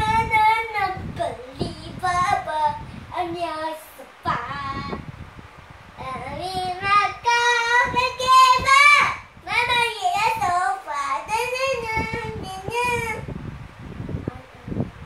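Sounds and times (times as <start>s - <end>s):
young boy singing: 0.0s - 5.2s, 6.0s - 13.4s.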